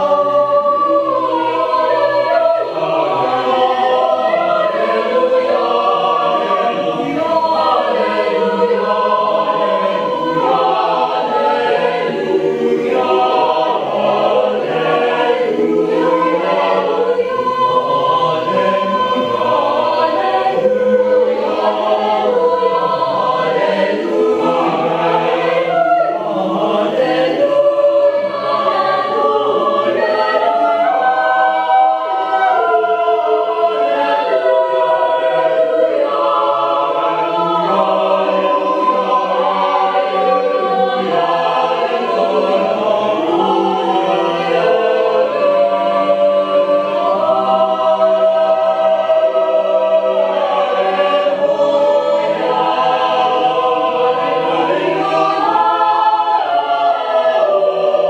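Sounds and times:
mixed choir singing a cappella: 0.0 - 58.0.

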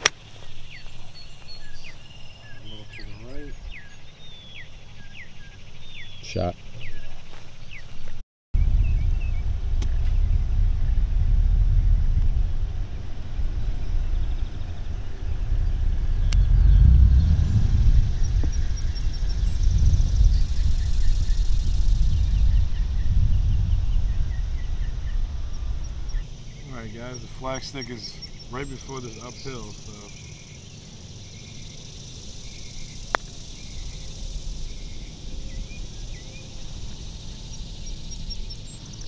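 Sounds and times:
faint bird chirps: 0.0 - 10.4, 13.4 - 39.0
wind buffeting microphone: 8.1 - 39.0.

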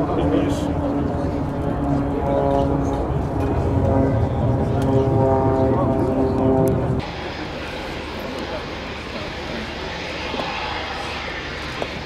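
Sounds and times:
jet engines droning: 0.0 - 12.0
jet roar with hiss: 6.8 - 12.0.

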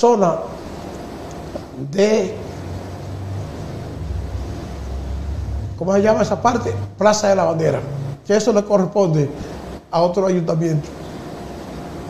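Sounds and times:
low rumble and hum: 2.1 - 8.3.

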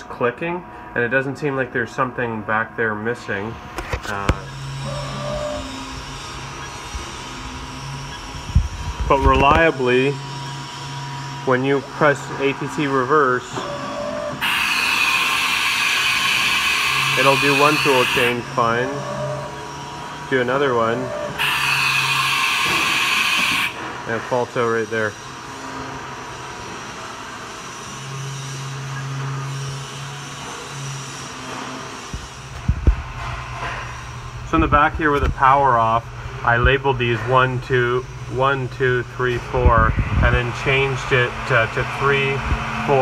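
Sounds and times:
milling machine running: 3.2 - 43.0.

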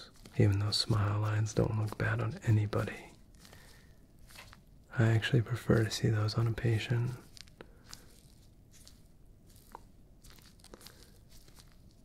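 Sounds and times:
exam gloves rustling: 0.0 - 12.0.

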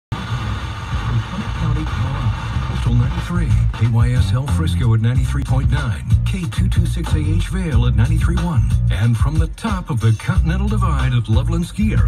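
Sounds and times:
faint radio music or voice: 0.1 - 12.0
car cabin rumble: 0.2 - 12.0.

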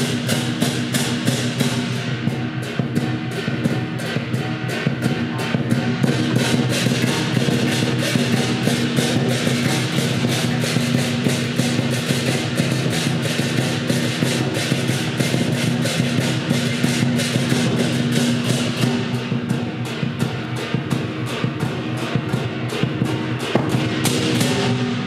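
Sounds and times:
clashing cymbals: 0.0 - 25.0
gong: 0.0 - 25.0
large drum beating: 0.0 - 25.0.

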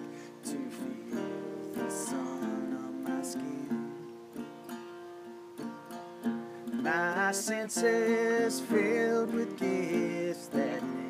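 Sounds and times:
man singing: 0.0 - 4.2, 6.7 - 11.0
acoustic guitar strumming: 0.0 - 11.0.

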